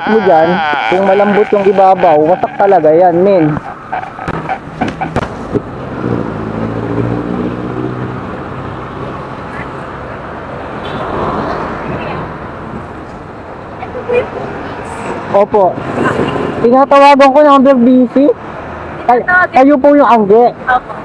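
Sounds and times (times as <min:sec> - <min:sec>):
road and traffic noise: 0:00.0 - 0:21.0.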